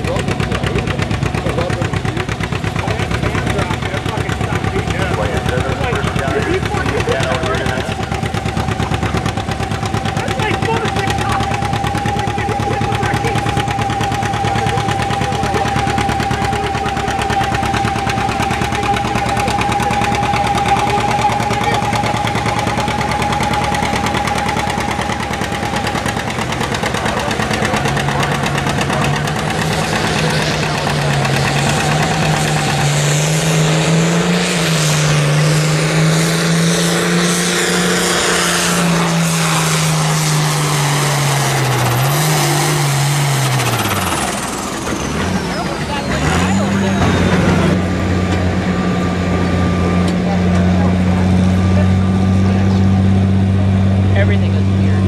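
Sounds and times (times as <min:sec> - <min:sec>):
tractor engine popping under load: 0:00.0 - 0:35.4
steady high whine: 0:00.0 - 0:46.0.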